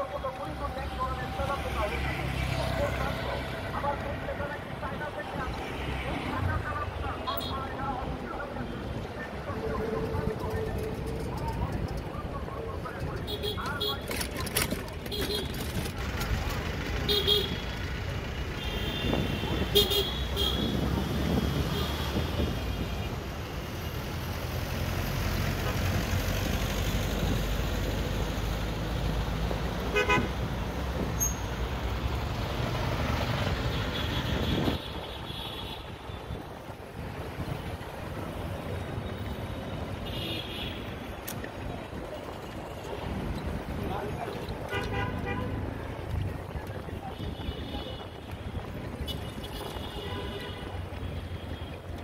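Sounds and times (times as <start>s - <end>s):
traffic rumble: 0.0s - 52.0s
car horn toots: 29.9s - 30.3s.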